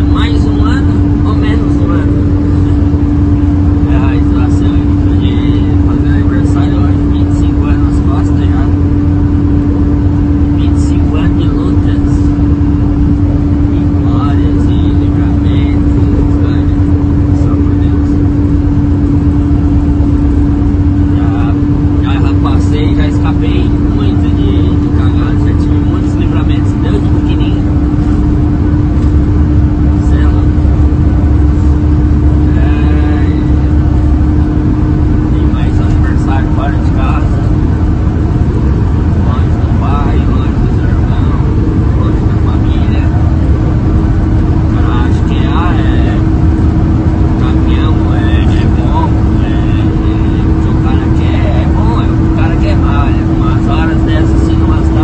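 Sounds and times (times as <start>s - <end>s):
people talking: 0.0s - 9.0s, 10.5s - 12.9s, 13.6s - 18.4s, 21.0s - 27.7s, 29.8s - 30.8s, 32.4s - 34.5s, 35.2s - 37.8s, 39.1s - 43.6s, 44.6s - 46.4s, 47.4s - 55.0s
truck engine and road noise: 0.0s - 55.0s.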